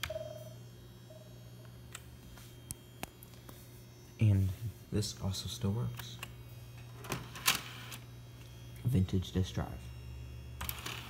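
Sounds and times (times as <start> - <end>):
computer low hum: 0.0 - 11.0
drive tray whirring: 5.2 - 10.0, 10.6 - 11.0.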